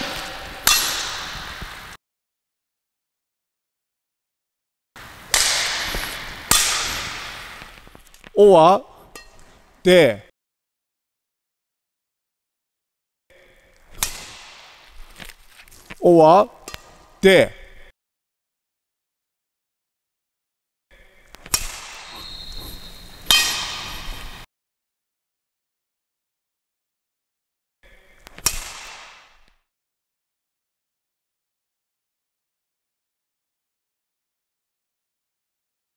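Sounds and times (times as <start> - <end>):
racket hitting shuttlecock: 0.0 - 1.8, 5.3 - 8.0, 13.9 - 15.6, 21.4 - 24.4, 28.3 - 29.5.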